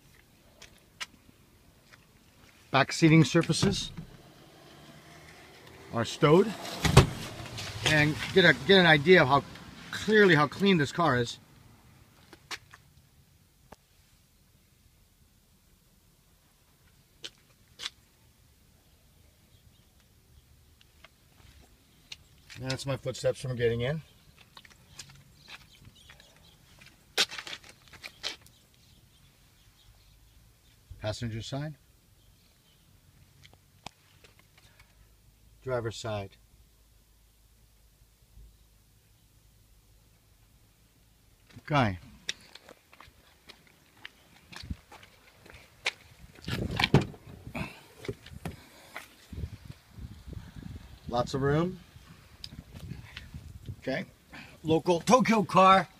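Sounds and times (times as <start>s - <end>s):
tailgate clunks and rustling: 6.6s - 7.9s, 46.5s - 48.6s
footsteps: 42.2s - 47.1s.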